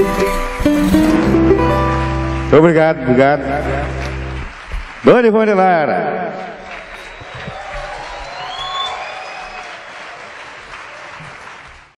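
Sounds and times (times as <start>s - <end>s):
audience applauding: 0.0s - 11.9s.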